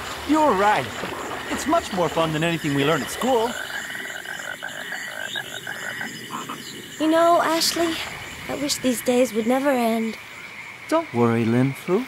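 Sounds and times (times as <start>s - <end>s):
frog croaking: 0.0s - 12.0s.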